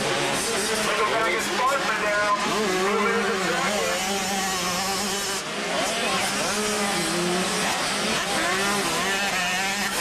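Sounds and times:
motocross bike engines revving: 0.0 - 10.0.

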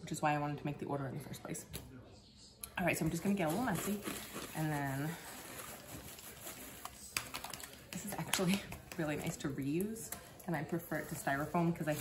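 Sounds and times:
hands rustling paper packing fill: 3.2 - 9.2.

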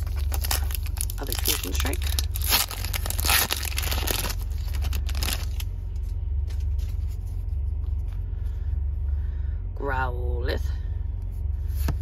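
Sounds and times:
foil pack ripping: 0.0 - 5.7
wrapper crinkling: 0.0 - 5.7.

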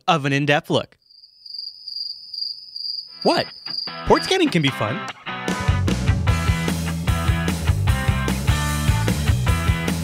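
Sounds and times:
crickets chirping: 1.0 - 4.8.

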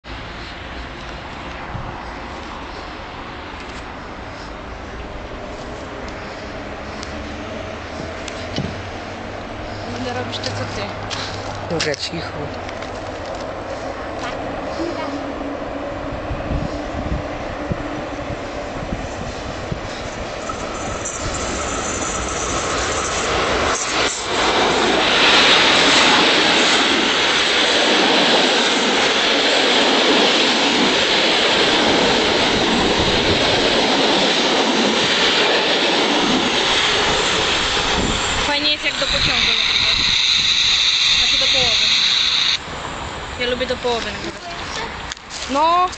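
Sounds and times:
passenger train passing: 0.0 - 45.9
wheels roaring on rail: 0.0 - 45.9.

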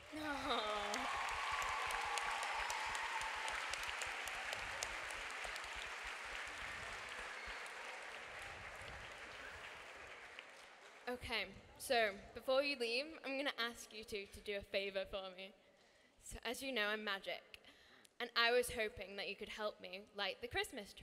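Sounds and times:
audience applauding: 0.0 - 11.1.

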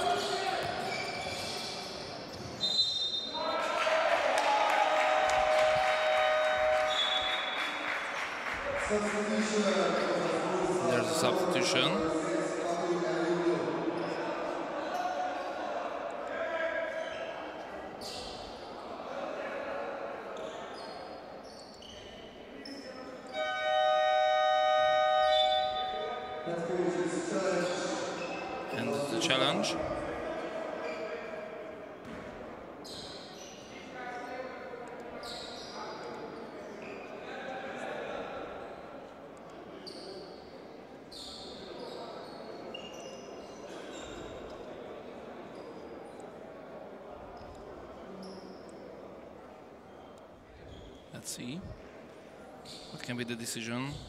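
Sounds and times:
voices echoing in a hall: 0.0 - 54.0
arena horn buzzing: 23.4 - 26.4.

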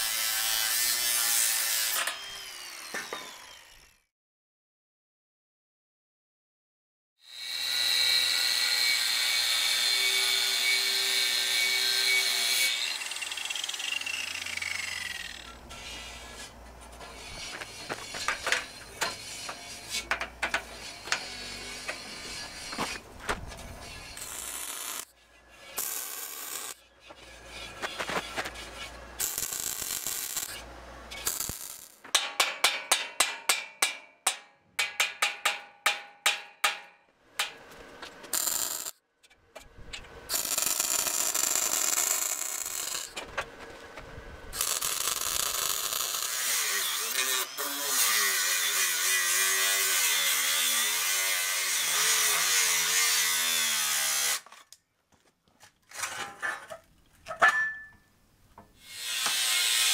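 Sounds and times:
angle grinder cutting steel: 0.0 - 4.0, 7.2 - 32.0, 38.3 - 38.9, 40.3 - 43.2, 44.6 - 54.4, 58.8 - 59.9.

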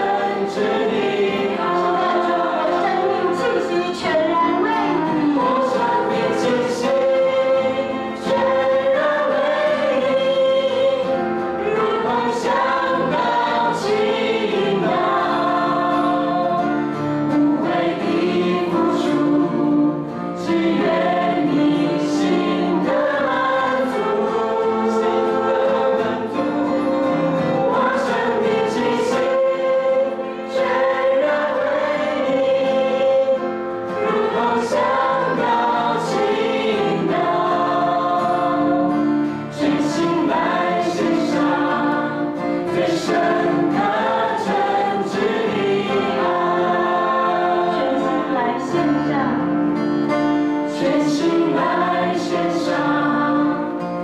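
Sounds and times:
acoustic guitar: 0.0 - 54.0
group singing worship song: 0.0 - 54.0.

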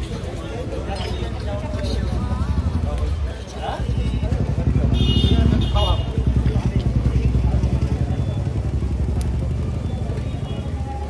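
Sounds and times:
faint voices: 0.0 - 11.0
vehicle rumble: 0.0 - 11.0.

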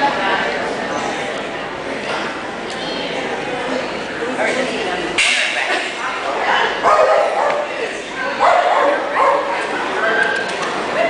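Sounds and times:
voices in a large hall: 0.0 - 11.0.

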